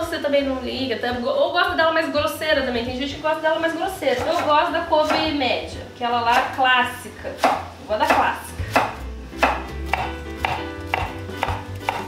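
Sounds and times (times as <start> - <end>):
knife striking cutting board: 4.1 - 5.3, 7.4 - 12.0.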